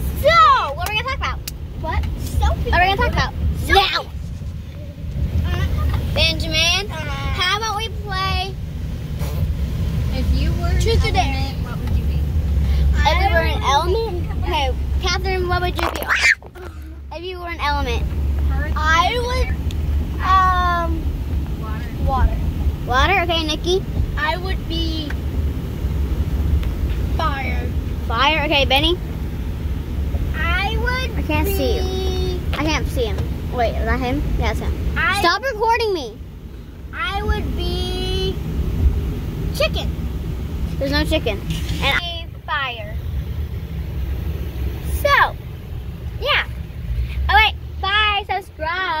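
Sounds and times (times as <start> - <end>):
car interior rumble: 0.0 - 49.0
child squealing: 16.0 - 16.9.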